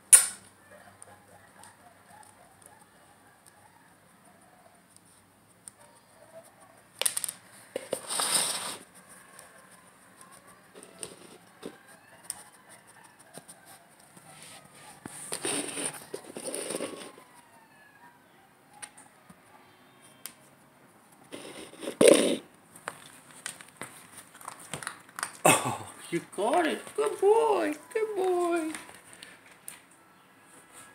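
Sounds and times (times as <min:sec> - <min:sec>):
plastic container scraping on floor: 0:07.8 - 0:08.8.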